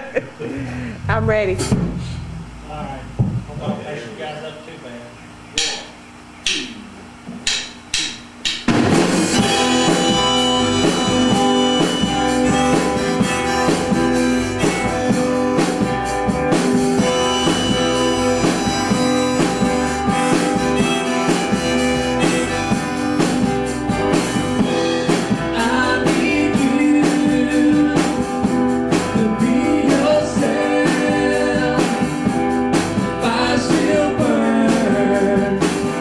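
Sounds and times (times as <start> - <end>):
drums: 0.0 - 36.0
count-in clicks: 5.6 - 6.7
electric guitar: 8.7 - 36.0
acoustic guitars: 8.8 - 36.0.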